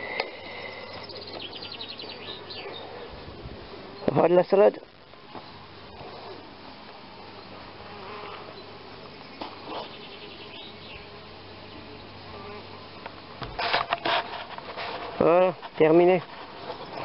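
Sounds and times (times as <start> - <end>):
insect buzzing: 0.0 - 15.8
rustling and knocks: 13.4 - 17.0.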